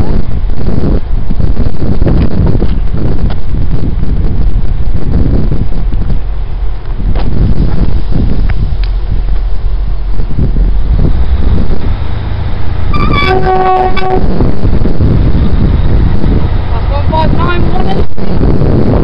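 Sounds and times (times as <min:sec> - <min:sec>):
train rumbling: 0:00.0 - 0:19.0
two-tone train horn: 0:12.9 - 0:14.5.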